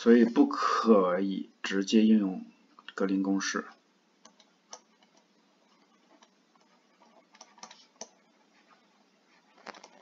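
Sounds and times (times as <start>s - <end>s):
stylus tapping on screen: 3.7s - 8.6s.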